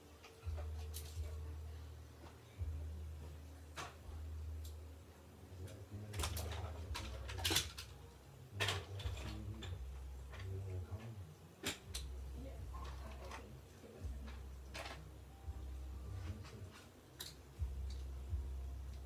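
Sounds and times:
steady low hum: 0.0 - 19.0
faint knocks clicks and rustles: 5.6 - 15.2.

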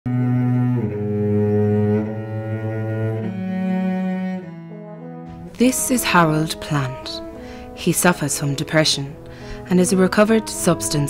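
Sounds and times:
low bowed strings: 0.1 - 11.0.

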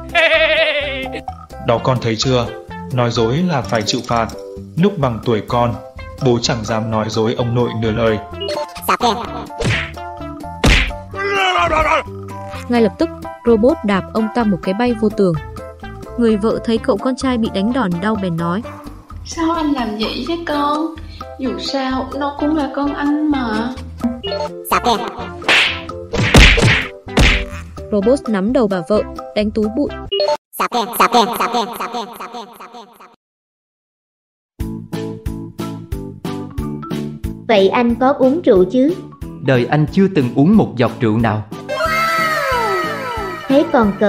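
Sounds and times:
background music: 0.0 - 31.7, 34.6 - 44.0
falling cry of pain: 0.1 - 1.2, 11.1 - 12.1, 41.7 - 43.7
loud whack: 9.6 - 10.0, 10.6 - 11.1, 25.4 - 27.6.

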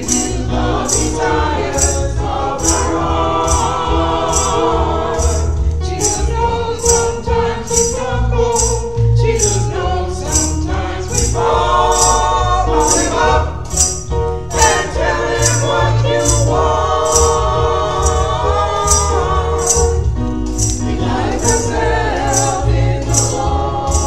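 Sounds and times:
choir singing a hymn: 0.0 - 24.0
low keyboard accompaniment: 0.0 - 24.0
tambourine jingling: 0.0 - 24.0.

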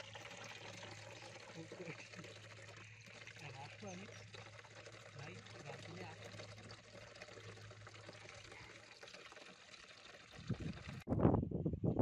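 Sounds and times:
faint water trickling: 0.0 - 11.1.

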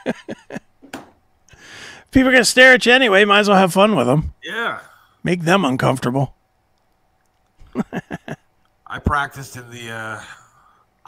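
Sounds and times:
men chuckling: 0.0 - 0.7, 7.6 - 8.5.

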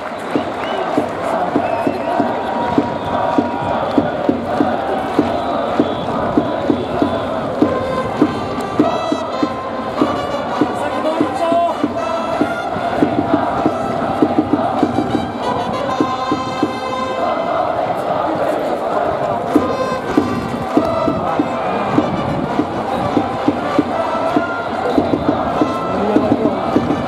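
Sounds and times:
crowd chanting in unison: 0.0 - 27.0
steady drum beat: 0.2 - 27.0
trumpets playing: 5.4 - 18.2, 18.9 - 27.0.

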